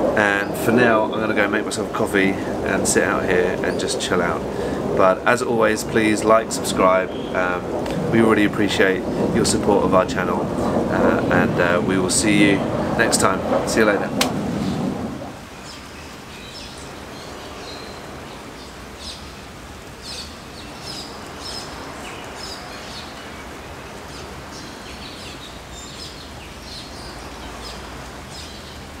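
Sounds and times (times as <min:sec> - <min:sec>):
birds chirping: 0:00.0 - 0:29.0
steady outdoor hiss: 0:00.0 - 0:29.0.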